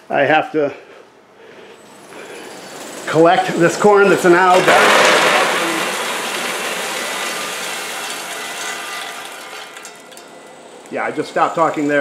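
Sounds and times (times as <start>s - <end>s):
caramel corn pouring down metal chute: 2.0s - 12.0s.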